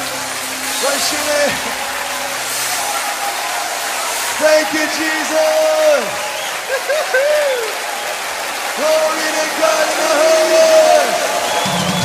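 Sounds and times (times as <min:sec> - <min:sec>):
congregation clapping: 0:00.0 - 0:12.0.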